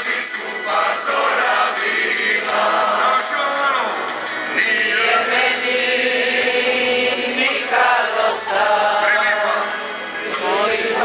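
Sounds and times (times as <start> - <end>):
male choir singing a cappella: 0.0 - 11.0.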